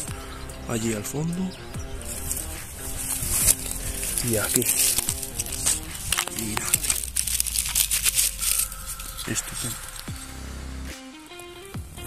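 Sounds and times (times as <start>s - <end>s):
dry stems crackling and rustling: 0.0s - 11.5s
faint background music: 0.0s - 12.0s.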